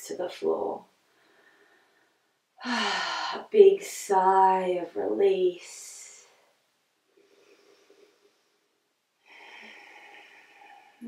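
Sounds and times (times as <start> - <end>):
woman breathing: 1.0 - 3.5, 7.0 - 11.0.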